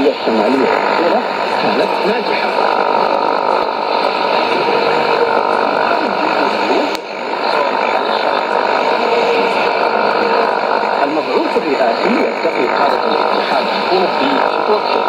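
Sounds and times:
radio static and hiss: 0.0 - 15.0
sharp static crackle: 0.0 - 15.0
weak radio speech: 0.0 - 15.0.

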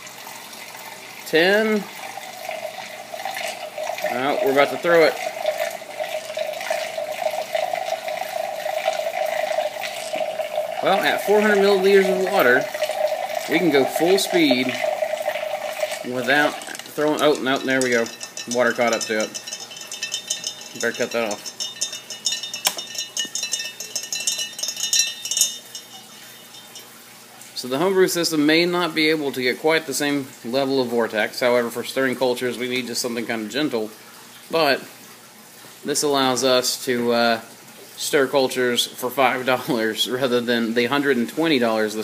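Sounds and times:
magnetic stirrer humming: 2.1 - 27.1.

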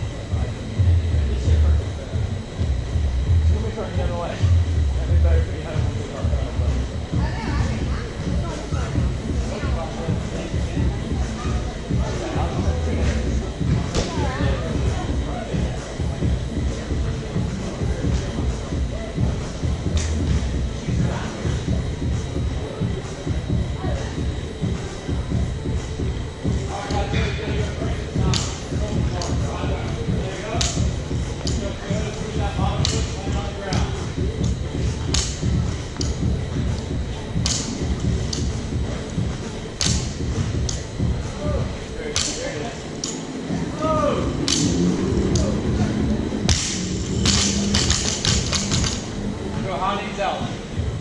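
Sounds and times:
loud background music: 0.0 - 51.0
voices: 0.0 - 51.0.

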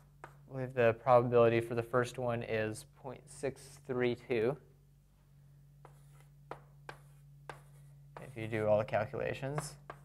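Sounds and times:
low steady hum: 0.0 - 10.0.

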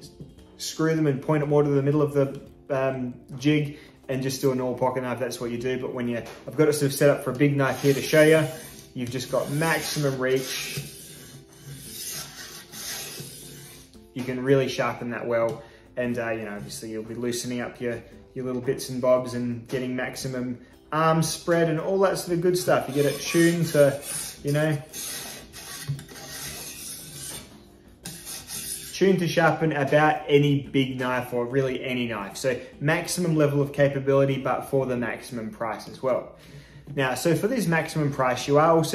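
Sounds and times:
metal parts rubbing and scraping: 7.7 - 14.0, 22.8 - 29.0
sharpening stone on knife blade: 7.7 - 14.0, 22.9 - 29.0.

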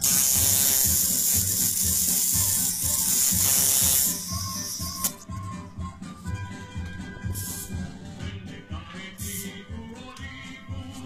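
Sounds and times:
tattoo machine buzzing: 0.0 - 5.2, 7.3 - 7.8, 9.2 - 9.6.

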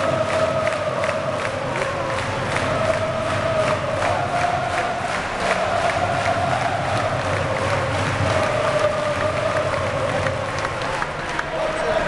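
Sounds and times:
crowd singing a chant: 0.0 - 12.0
scattered claps: 0.0 - 12.0.

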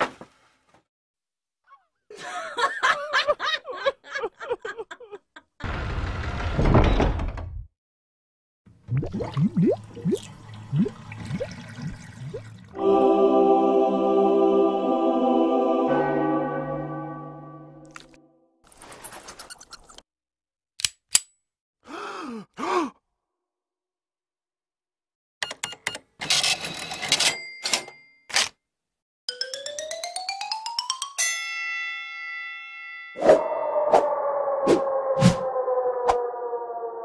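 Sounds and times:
person groaning: 21.9 - 23.0.

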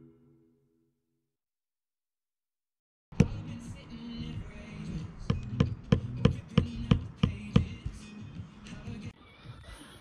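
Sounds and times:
background music: 0.0 - 0.9, 3.1 - 10.0.

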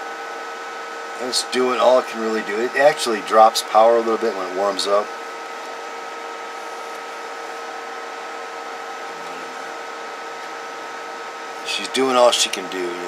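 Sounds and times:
faint high whine: 0.0 - 13.0.

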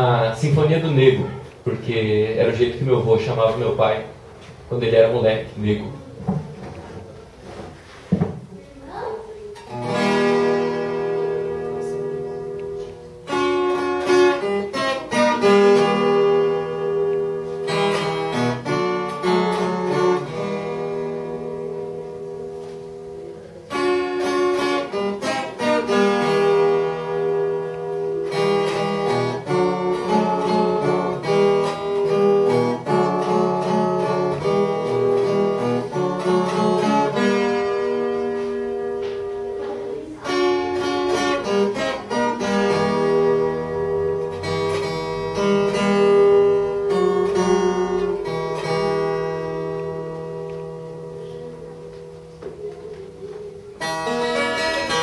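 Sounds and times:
plucked folk guitar melody: 0.0 - 55.0.

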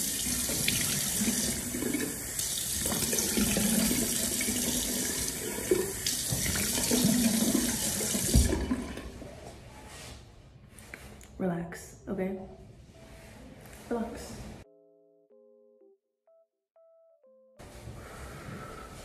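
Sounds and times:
tap water running into sink: 0.0 - 9.2.

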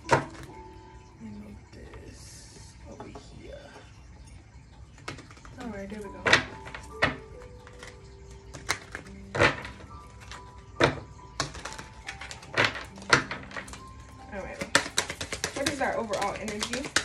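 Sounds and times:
soft music of held tones: 0.0 - 17.0
cards being shuffled: 11.4 - 17.0.

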